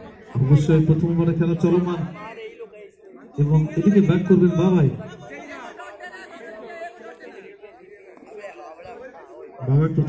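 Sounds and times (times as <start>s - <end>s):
chatter of several voices: 0.0s - 10.0s.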